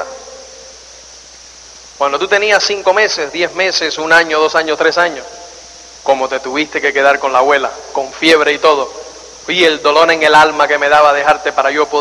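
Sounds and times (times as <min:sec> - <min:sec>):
background hiss: 0:00.0 - 0:12.0
man speaking: 0:02.0 - 0:12.0.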